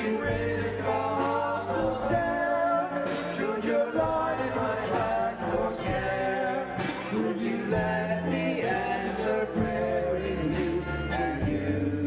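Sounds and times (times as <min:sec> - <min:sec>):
acoustic guitar: 0:00.0 - 0:12.0
drums: 0:00.0 - 0:12.0
group singing a hymn: 0:00.0 - 0:12.0.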